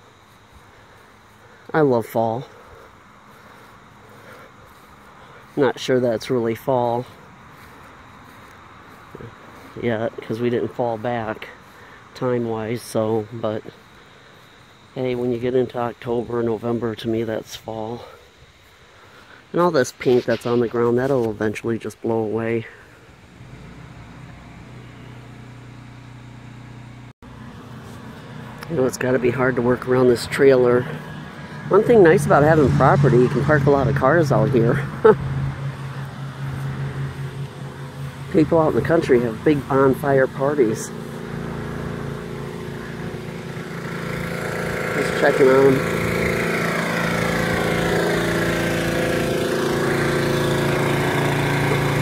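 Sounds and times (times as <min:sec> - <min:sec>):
distant engine humming: 0:00.0 - 0:52.0.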